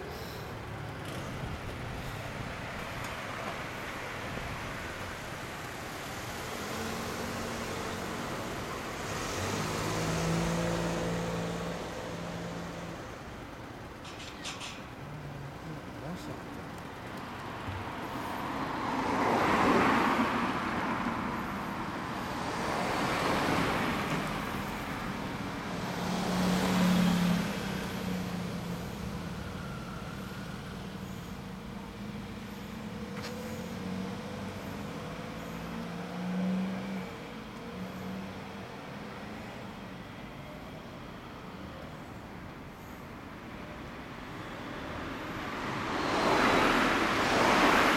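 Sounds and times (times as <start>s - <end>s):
engines idling: 0.0s - 9.9s, 27.4s - 35.6s
vehicles passing: 0.0s - 47.9s.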